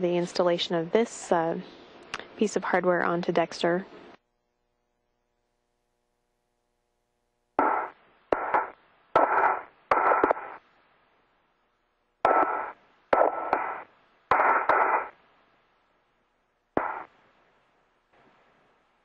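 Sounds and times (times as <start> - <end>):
radio hiss bursts: 7.6 - 10.6, 12.3 - 15.2, 16.8 - 17.2.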